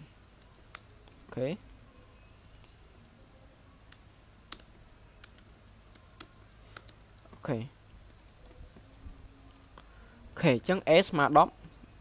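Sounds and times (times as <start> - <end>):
computer keyboard keystrokes: 3.9 - 7.0.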